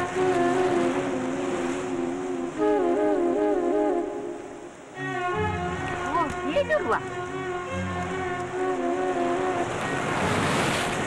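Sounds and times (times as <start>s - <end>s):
film score music: 0.0s - 11.0s.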